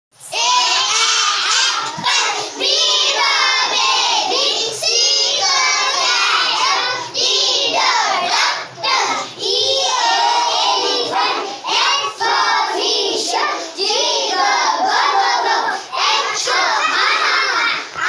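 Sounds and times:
children singing in unison: 0.2s - 18.0s.

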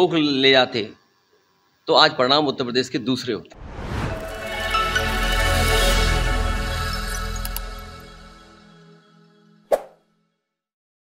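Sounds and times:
outro music with sustained tones: 3.9s - 9.6s.

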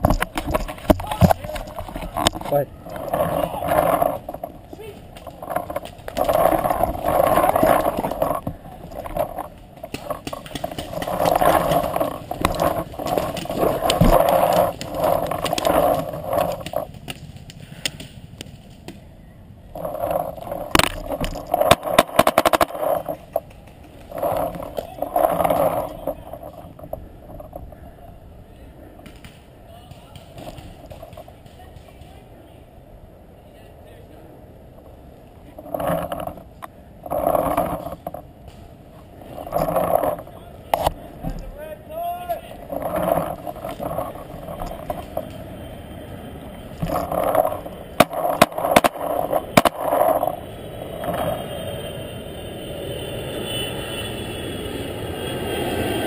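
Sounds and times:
distant players shouting: 0.8s - 2.2s
cluster of sharp pops: 16.9s - 19.0s.

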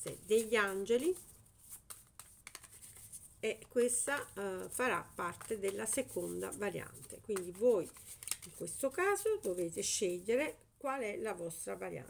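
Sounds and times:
cards being shuffled: 0.0s - 9.9s.

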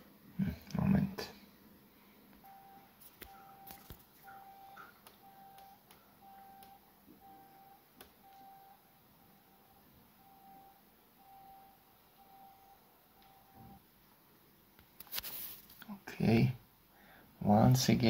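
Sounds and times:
faint electronic beep: 2.4s - 13.8s.

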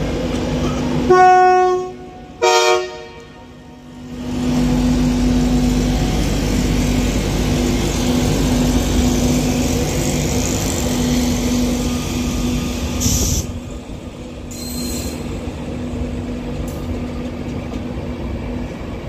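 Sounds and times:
train wheels rumbling on rails: 0.0s - 1.2s, 4.0s - 19.0s.

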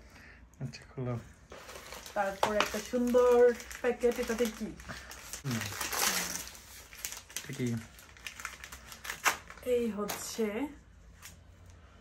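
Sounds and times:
wrapping paper crinkling: 1.5s - 10.3s.

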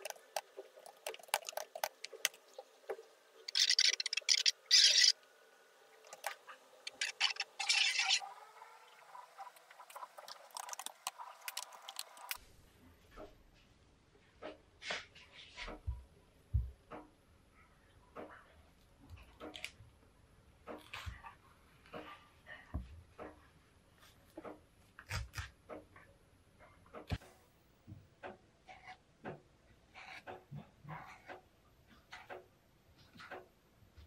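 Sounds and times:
water dripping from a faucet: 0.0s - 3.1s, 9.0s - 12.4s.

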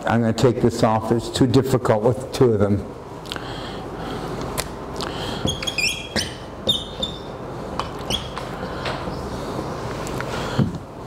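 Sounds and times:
marker squeaking on whiteboard: 5.4s - 9.3s.

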